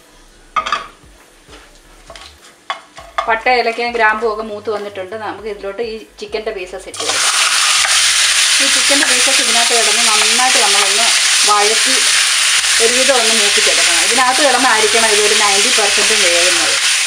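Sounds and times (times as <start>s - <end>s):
chicken sizzling in hot oil: 7.0s - 17.0s.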